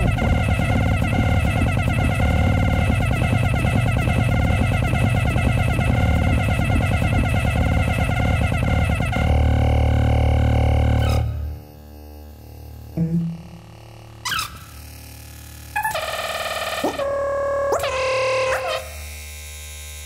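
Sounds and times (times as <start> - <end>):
heavy low drone: 12.9 - 13.9.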